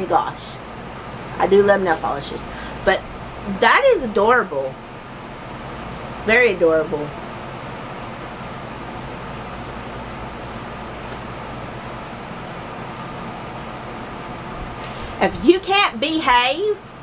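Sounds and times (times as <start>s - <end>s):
electric fan whirring: 0.0s - 17.0s.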